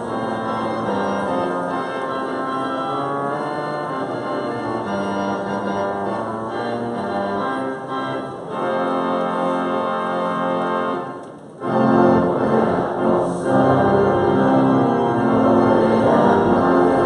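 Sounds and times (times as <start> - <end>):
pipe organ playing chords: 0.0 - 17.0.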